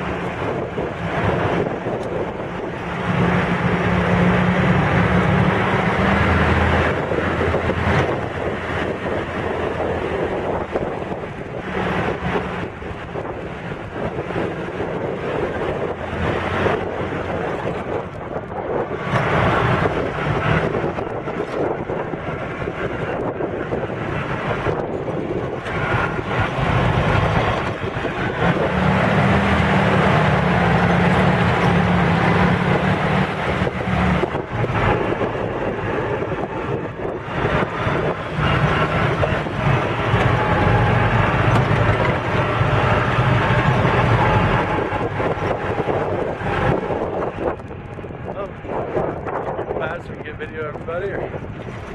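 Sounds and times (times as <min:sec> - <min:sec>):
jeep engine running: 0:00.0 - 0:51.9
wind rumbling on microphone: 0:00.0 - 0:51.9.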